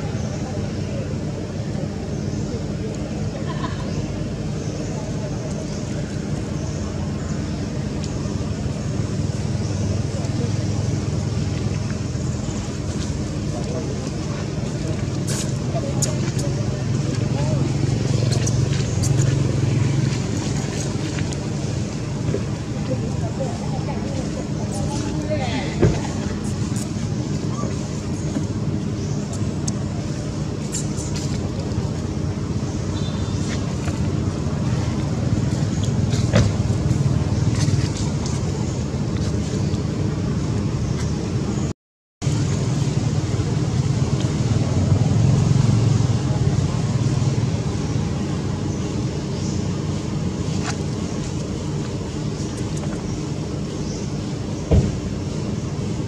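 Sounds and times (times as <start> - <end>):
indistinct voices: 0.0 - 39.6
low motor hum: 0.0 - 56.0
low outdoor rumble: 0.0 - 56.0.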